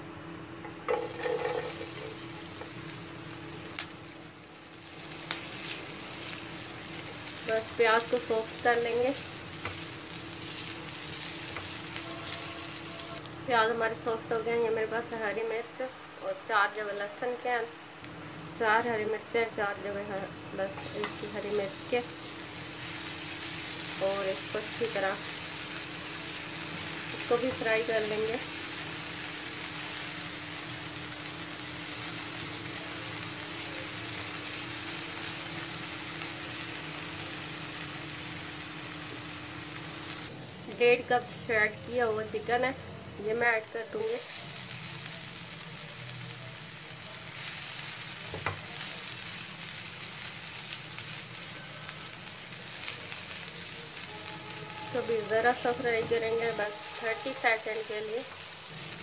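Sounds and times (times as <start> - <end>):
food sizzling in hot oil: 0.6 - 59.0
spatula stirring in pan: 0.9 - 2.7.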